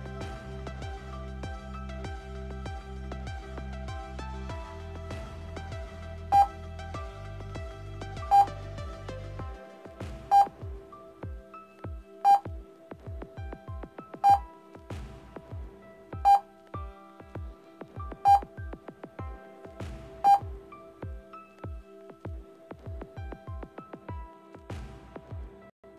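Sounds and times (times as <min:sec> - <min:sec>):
background music: 0:00.0 - 0:25.9.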